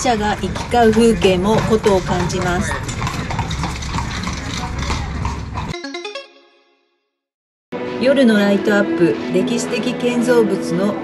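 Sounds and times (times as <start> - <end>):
hooves clip-clopping on paving: 0.0 - 5.7
street noise: 0.0 - 5.7, 7.8 - 11.0.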